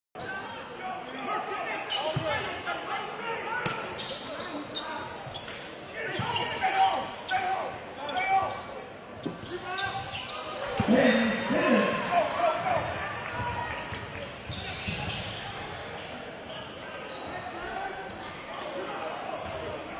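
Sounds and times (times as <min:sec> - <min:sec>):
voices and shouts: 0:00.2 - 0:05.0, 0:05.9 - 0:15.8.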